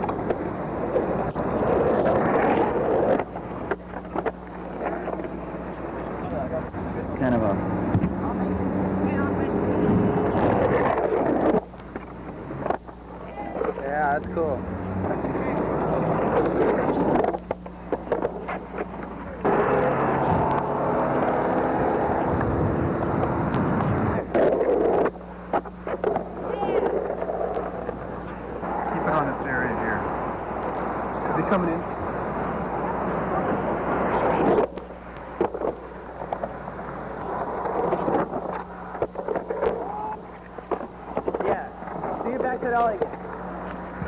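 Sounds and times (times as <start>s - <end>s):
electrical hum: 0.0s - 44.0s
street noise: 0.0s - 44.0s
muffled voices: 5.0s - 11.6s, 12.4s - 17.4s, 26.2s - 32.0s.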